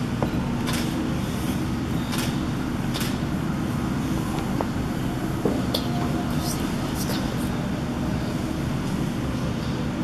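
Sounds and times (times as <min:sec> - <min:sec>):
low rumbling background noise: 0:00.0 - 0:10.0.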